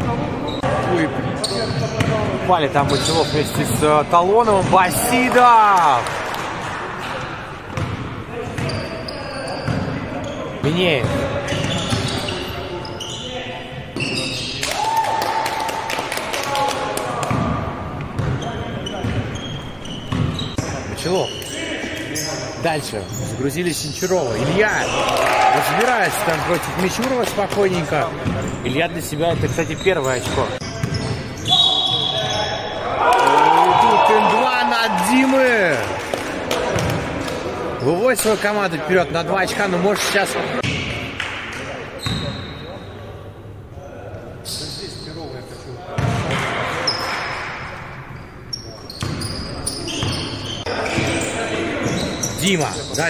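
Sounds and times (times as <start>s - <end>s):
players' voices: 0.0s - 14.9s, 15.6s - 47.9s, 48.5s - 53.0s
basketball bouncing on gym floor: 18.2s - 19.3s
voices shouting: 31.5s - 35.7s.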